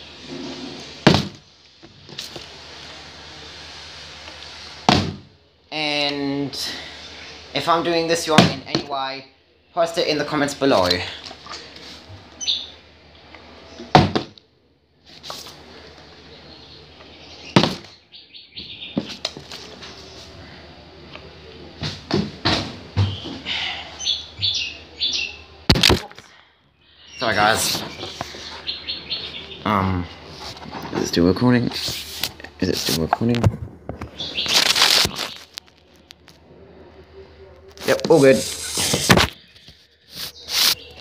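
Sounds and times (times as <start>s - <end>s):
low hiss: 0.0s - 8.6s
bird chirps: 12.4s - 12.8s, 16.4s - 19.1s, 23.0s - 25.6s, 26.8s - 30.1s, 34.1s - 35.5s, 39.4s - 41.0s
camera handling rustle: 33.9s - 36.2s.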